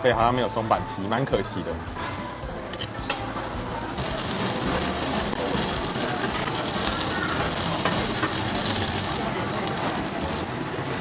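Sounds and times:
beef sizzling on a grill: 0:04.0 - 0:11.0.

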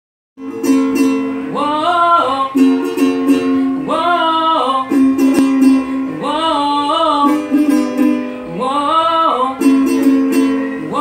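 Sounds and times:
acoustic guitar strumming: 0:00.4 - 0:11.0
young man singing: 0:01.5 - 0:02.9, 0:03.6 - 0:11.0.

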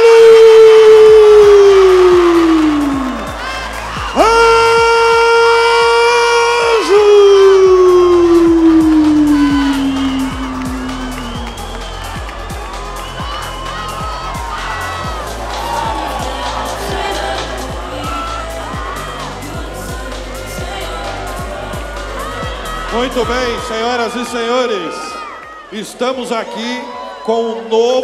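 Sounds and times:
arena music: 0:00.0 - 0:28.0
crowd cheering and whooping: 0:00.0 - 0:28.0
announcer shouting drawn-out name: 0:04.2 - 0:11.3.

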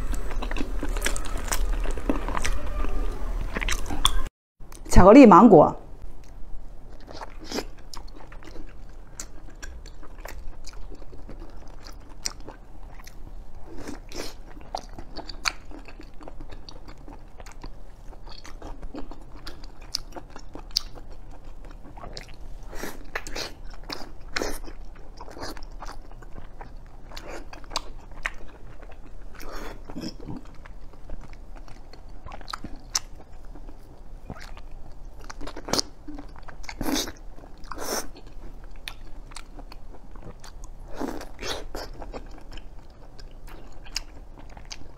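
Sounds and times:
person chewing close up: 0:00.0 - 0:04.3, 0:06.2 - 0:44.9.

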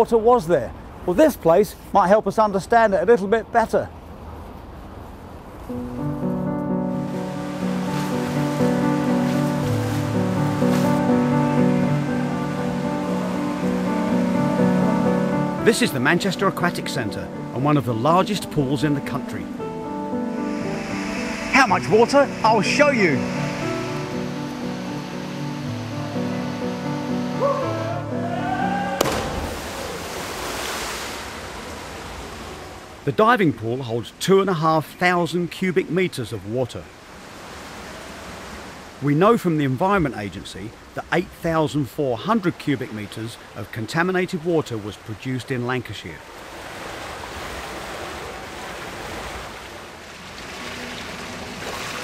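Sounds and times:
water washing: 0:05.7 - 0:27.4, 0:29.0 - 0:32.6
background music: 0:05.7 - 0:29.6
rushing water in pool hall: 0:07.0 - 0:19.3, 0:20.5 - 0:52.0
splash into swimming pool: 0:29.0 - 0:31.5.

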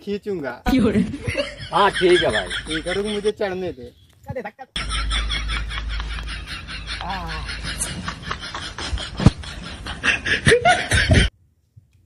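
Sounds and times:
person snickering and laughing: 0:04.8 - 0:11.3.

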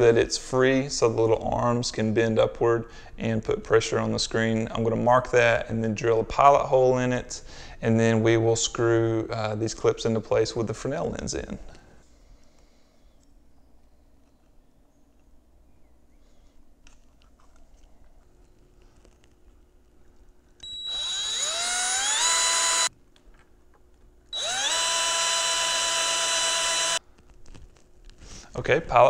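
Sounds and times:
faint handling noises: 0:11.6 - 0:20.7, 0:27.0 - 0:29.0
cordless drill whining: 0:20.6 - 0:22.9, 0:24.3 - 0:27.0.

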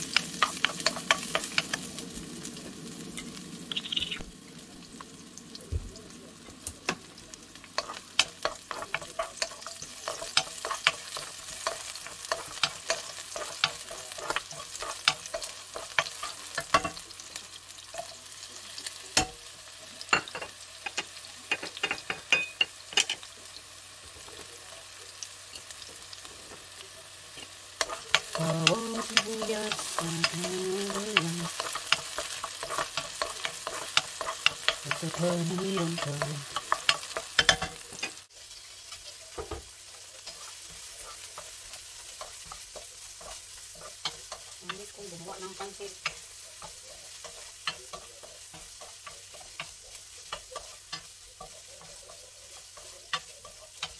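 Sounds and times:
garlic sizzling in oil: 0:00.0 - 0:53.9
wooden spoon stirring: 0:00.1 - 0:01.7, 0:07.7 - 0:17.0, 0:27.4 - 0:38.1, 0:38.9 - 0:53.9.

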